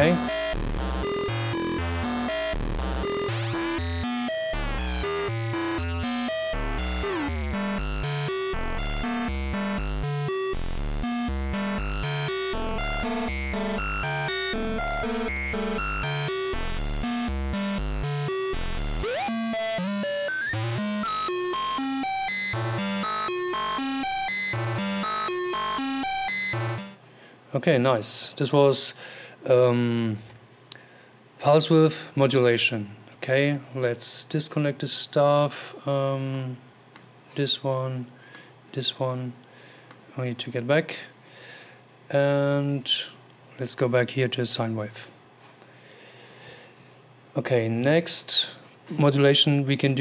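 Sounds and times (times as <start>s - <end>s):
buzzy synthesizer note sequence: 0.0s - 27.0s.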